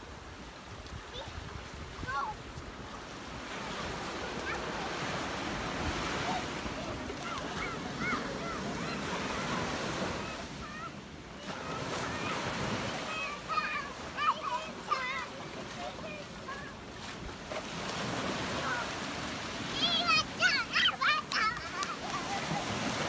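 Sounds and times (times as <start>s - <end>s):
ocean surf washing up beach: 0.0s - 23.0s
young children calling out: 6.1s - 16.8s, 19.6s - 22.8s.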